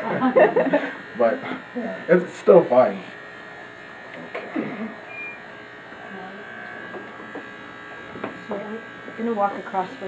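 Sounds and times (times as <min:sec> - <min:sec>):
electric hair clipper whine: 0:00.0 - 0:10.0.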